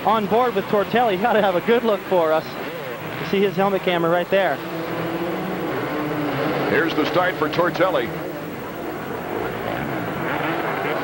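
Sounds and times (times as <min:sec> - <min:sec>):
motorcycle engines running hard: 0:00.0 - 0:11.0.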